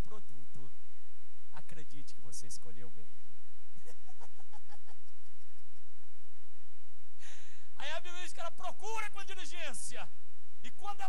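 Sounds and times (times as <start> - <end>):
person laughing: 3.8 - 5.7.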